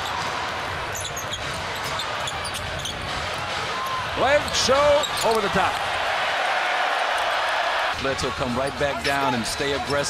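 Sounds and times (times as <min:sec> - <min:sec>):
arena crowd noise: 0:00.0 - 0:10.0
sneaker squeaks: 0:00.9 - 0:03.2, 0:04.4 - 0:05.4.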